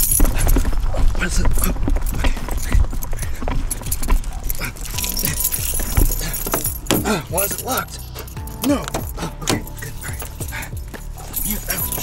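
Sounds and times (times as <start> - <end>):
car keys jangling: 0.0 - 0.8, 2.1 - 12.0
background music with bass: 0.0 - 12.0.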